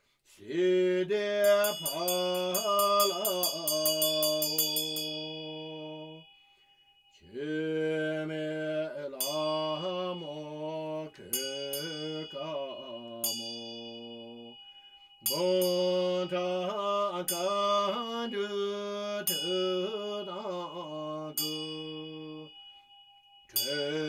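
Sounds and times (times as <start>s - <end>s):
man chanting: 0.4s - 6.2s, 7.2s - 14.6s, 15.3s - 22.5s, 23.6s - 24.0s.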